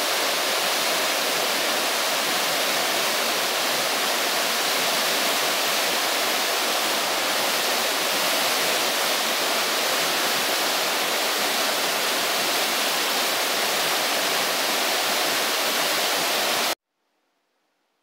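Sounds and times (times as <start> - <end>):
waterfall rushing into a pool: 0.0 - 16.8.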